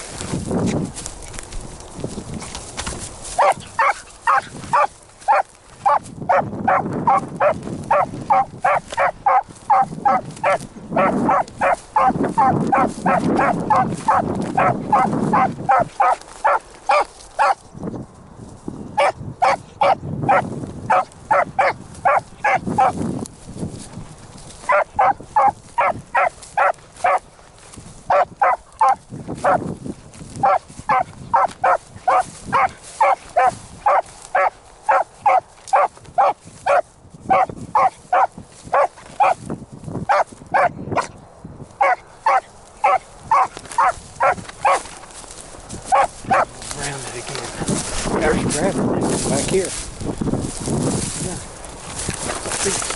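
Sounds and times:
dog baying: 0:03.4 - 0:17.6, 0:19.0 - 0:22.9, 0:24.6 - 0:27.2, 0:28.1 - 0:29.6, 0:30.4 - 0:39.4, 0:40.1 - 0:41.1, 0:41.8 - 0:44.9, 0:45.8 - 0:46.6.

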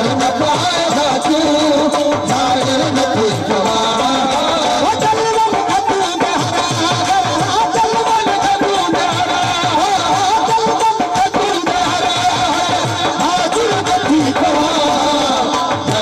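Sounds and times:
hand drum beat: 0:00.0 - 0:16.0.

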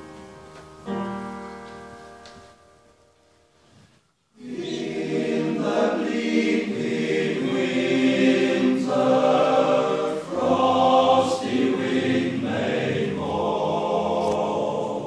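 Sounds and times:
male choir singing a cappella: 0:04.4 - 0:15.0.

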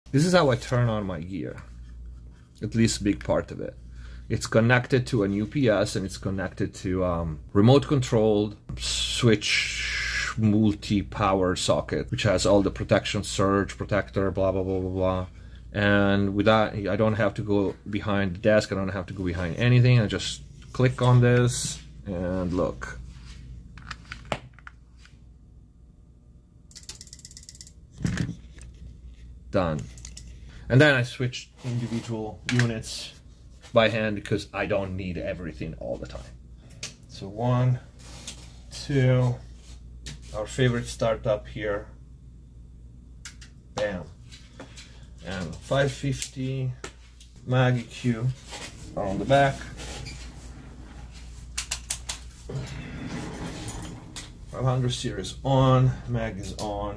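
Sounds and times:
low steady hum: 0:00.1 - 0:56.9
rustling movement: 0:47.0 - 0:54.7.

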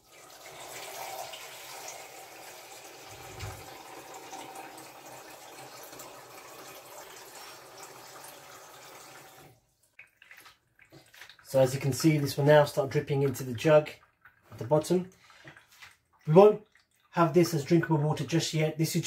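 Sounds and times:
tap water filling jug: 0:00.0 - 0:18.2.

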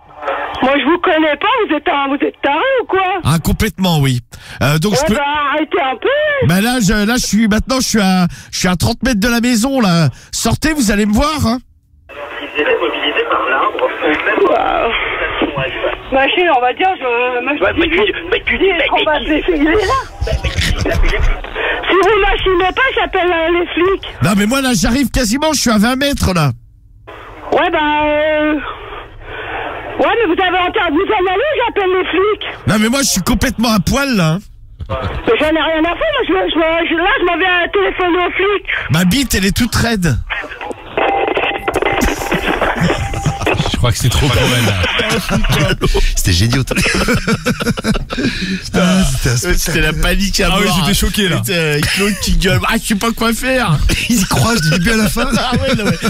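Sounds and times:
voices over a telephone line: 0:00.0 - 0:03.5, 0:12.1 - 0:25.7, 0:27.1 - 0:46.8, 0:48.7 - 0:56.0
radio station jingle: 0:38.9 - 0:56.0.

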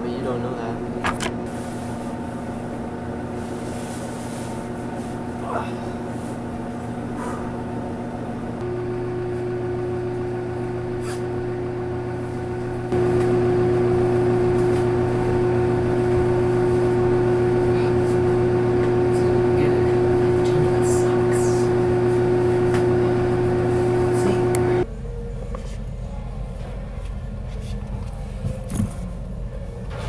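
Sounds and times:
electrical machine hum: 0:00.0 - 0:30.0.

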